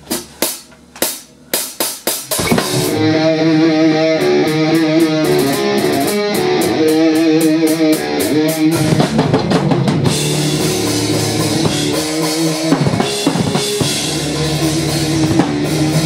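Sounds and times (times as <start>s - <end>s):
drum strikes: 0.0s - 16.0s
rock band playing: 2.2s - 16.0s.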